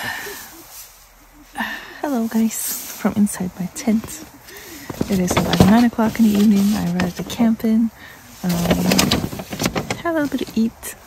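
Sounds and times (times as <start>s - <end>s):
crackly fabric rustling: 0.2s - 11.0s.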